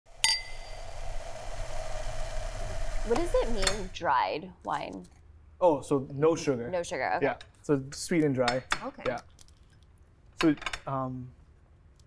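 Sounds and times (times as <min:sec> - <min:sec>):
steady hum: 0:00.1 - 0:04.6
wine glass clink: 0:00.2 - 0:00.7.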